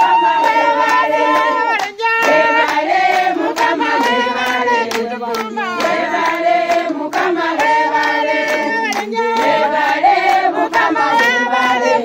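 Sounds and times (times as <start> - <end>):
hands clapping in time: 0.0 - 12.0
women singing together: 0.0 - 12.0.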